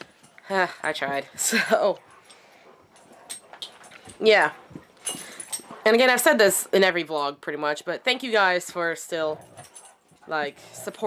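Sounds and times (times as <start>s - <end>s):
dogs moving about with toys: 0.0s - 7.3s, 7.9s - 11.0s.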